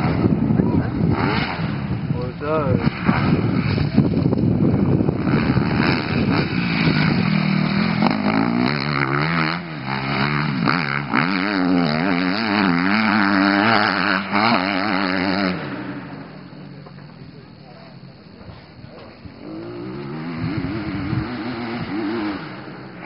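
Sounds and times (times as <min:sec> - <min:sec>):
motocross bike engine revving: 0:00.0 - 0:23.0.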